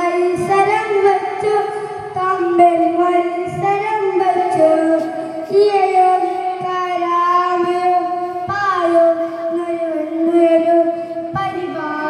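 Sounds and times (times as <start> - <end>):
child singing through loudspeaker: 0.0 - 12.0.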